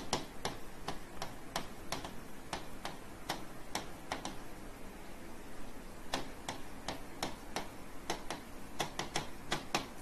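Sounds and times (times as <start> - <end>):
stylus tapping on glass: 0.0 - 4.4, 6.1 - 10.0.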